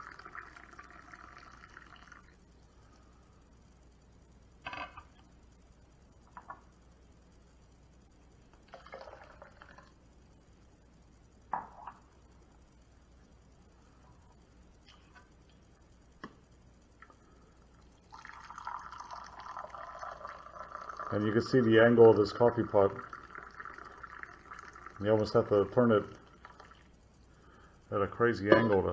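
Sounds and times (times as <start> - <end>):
water pouring into mug: 0.0 - 2.4, 8.7 - 9.9, 18.0 - 26.9.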